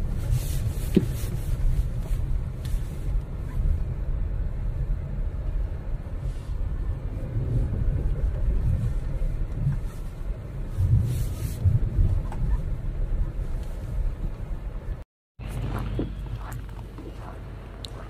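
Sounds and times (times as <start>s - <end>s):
car rumbling over rough road: 0.0s - 18.0s.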